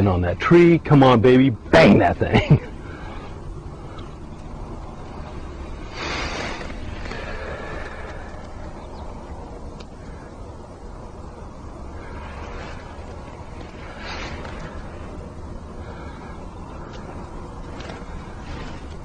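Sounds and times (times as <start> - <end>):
steady low rumble: 0.0 - 19.0
rushes of hiss: 5.7 - 8.8, 11.8 - 16.4.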